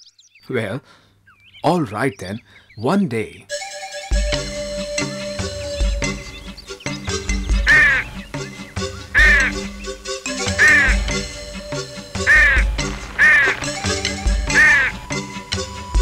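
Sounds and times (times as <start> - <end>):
background music with bass beat: 3.5 - 16.0
cartoon crow cawing: 7.6 - 8.2, 9.0 - 9.7, 10.5 - 11.1, 12.2 - 13.7, 14.5 - 15.0.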